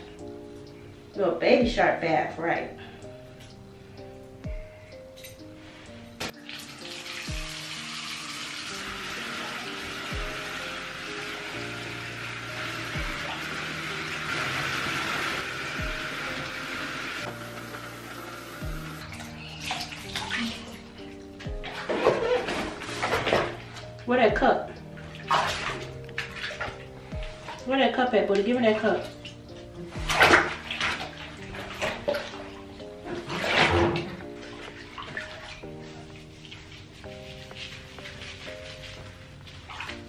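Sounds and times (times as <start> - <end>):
hands splashing bathwater: 6.2 - 23.9, 25.0 - 27.6, 28.3 - 40.0
water pouring from bathtub tap: 6.4 - 23.9, 25.1 - 26.8.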